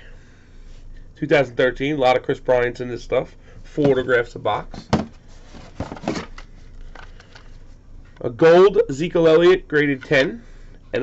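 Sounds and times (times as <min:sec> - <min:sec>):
cards and packaging rustling: 0:04.8 - 0:07.6.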